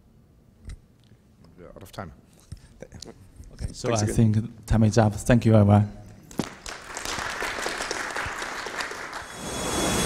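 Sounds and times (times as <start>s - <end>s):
small audience applauding: 6.3s - 9.9s.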